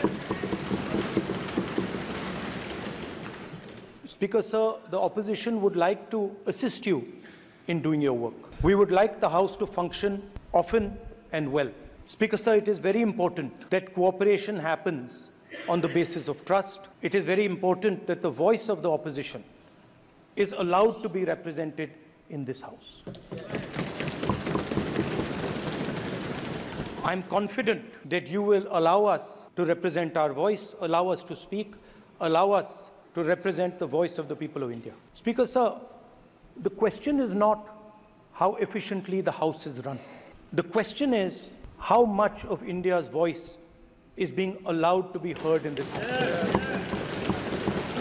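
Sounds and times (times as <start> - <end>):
thumping on desks: 0.0 - 4.0, 23.0 - 27.0, 45.4 - 48.0.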